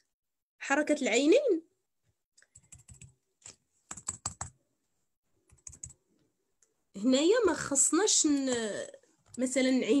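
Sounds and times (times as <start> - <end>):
computer keyboard typing: 2.4 - 4.6, 5.4 - 6.0.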